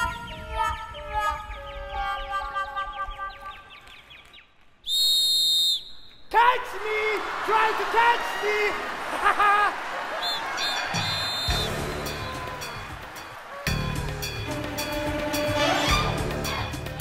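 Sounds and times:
shrill whistle blast: 4.8s - 6.3s, 10.2s - 12.9s.

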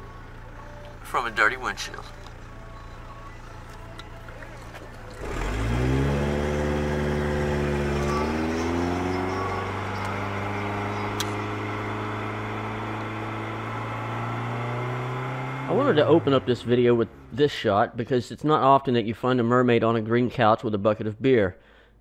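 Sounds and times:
car engine from inside cabin: 0.0s - 17.4s.

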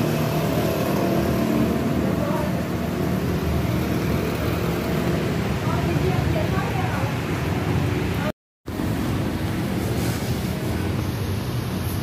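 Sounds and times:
bus diesel engine: 0.0s - 12.0s
motorcycles on road: 0.0s - 12.0s.

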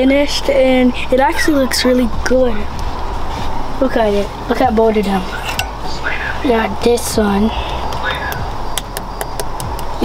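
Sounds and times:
steady low hum: 0.0s - 10.0s
sharp irregular pops: 7.9s - 10.0s.

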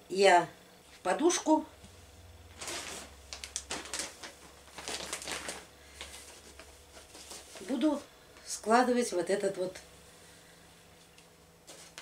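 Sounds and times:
plastic bag rustling: 2.5s - 8.1s, 10.9s - 12.0s.

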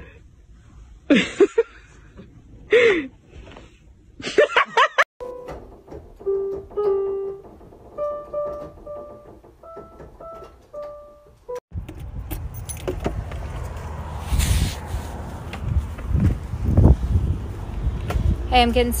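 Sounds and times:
electronic keyboard notes: 5.2s - 11.6s
outdoor background noise: 7.4s - 19.0s.

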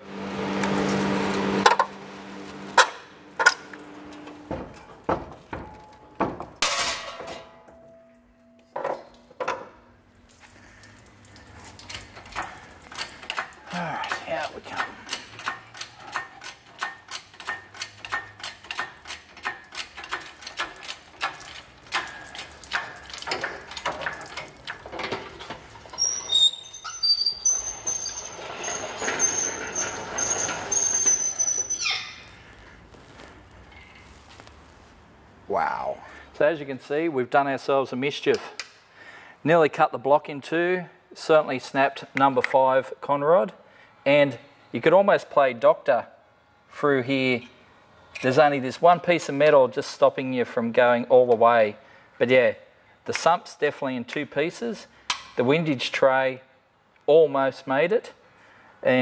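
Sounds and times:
tool knocks and clanks: 1.6s - 1.9s, 2.7s - 8.0s, 8.6s - 9.8s
rapid ratchet clicking: 12.3s - 23.9s
high squeal: 25.9s - 32.5s.

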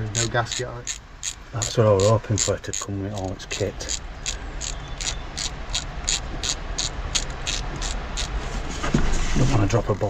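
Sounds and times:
socket ratchet clicking: 0.2s - 8.4s.

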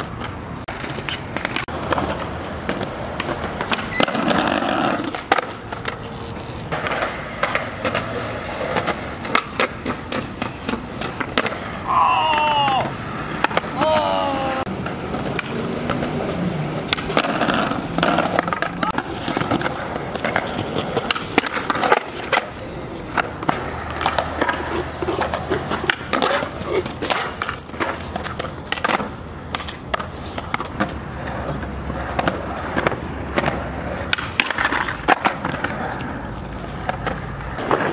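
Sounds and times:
skateboard clicks and knocks: 0.0s - 37.9s
skateboard rolling on concrete: 0.0s - 37.9s.

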